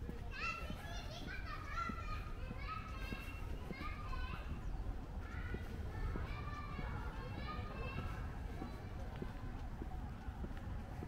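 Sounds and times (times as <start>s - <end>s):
children shouting: 0.2s - 9.6s.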